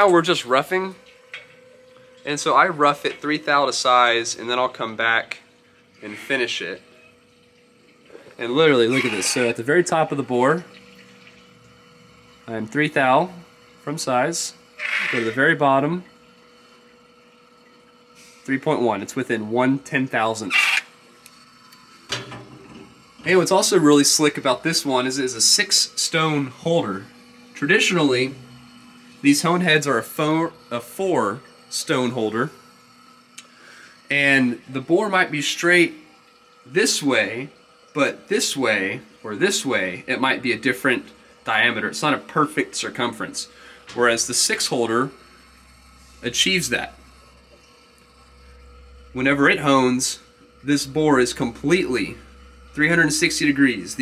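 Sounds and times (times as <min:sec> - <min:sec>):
faint machine hum: 0:00.0 - 0:54.0
person speaking: 0:08.4 - 0:10.6, 0:14.8 - 0:16.0.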